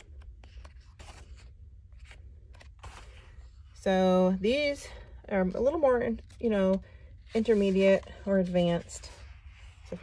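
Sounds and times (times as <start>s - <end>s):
paper pages rustling: 0.0s - 3.7s.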